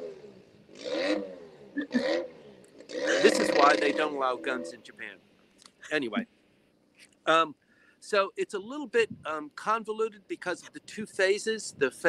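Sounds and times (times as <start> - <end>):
engine revving: 0.0 - 4.8.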